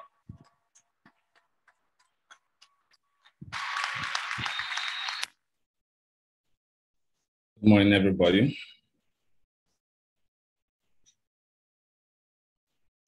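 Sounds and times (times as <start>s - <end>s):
audience clapping: 0.6s - 5.3s.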